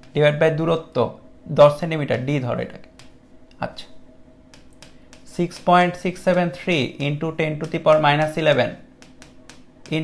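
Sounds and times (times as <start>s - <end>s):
pen tapping on a board: 4.5s - 10.0s.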